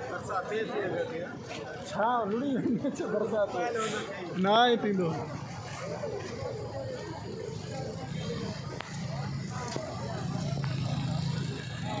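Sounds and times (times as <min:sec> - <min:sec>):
people talking indistinctly: 0:00.0 - 0:12.0.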